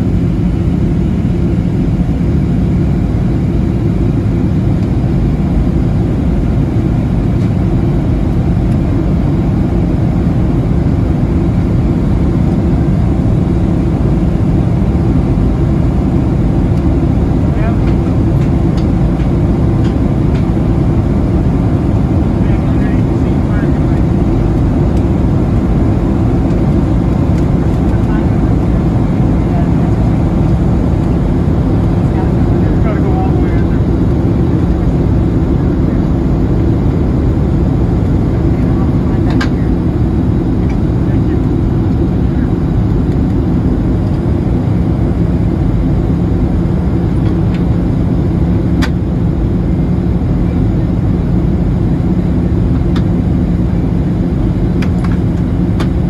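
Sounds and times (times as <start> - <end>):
airplane cabin roar: 0.0 - 56.0.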